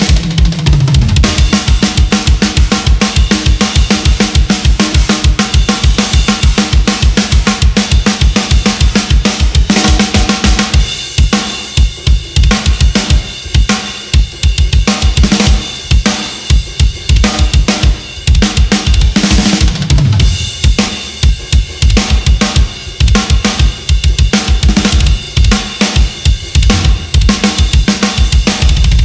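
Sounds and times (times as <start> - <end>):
drum fill: 0.0 - 29.0
snare drum: 0.0 - 29.0
crash cymbals: 1.1 - 29.0.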